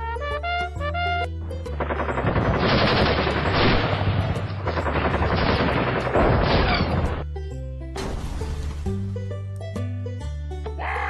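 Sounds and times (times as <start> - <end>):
background music: 0.0 - 11.0
machine-gun fire: 1.8 - 7.2.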